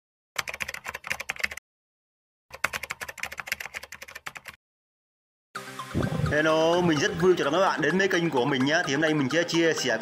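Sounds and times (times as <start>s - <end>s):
keyboard typing clicks: 0.4s - 1.6s, 2.5s - 4.6s.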